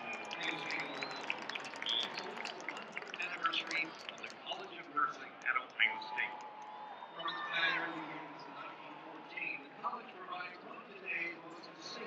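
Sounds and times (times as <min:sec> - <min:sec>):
whistles: 0:00.0 - 0:04.3
crowd shouts: 0:00.0 - 0:04.5, 0:05.2 - 0:09.8
crowd din of voices: 0:00.0 - 0:12.0.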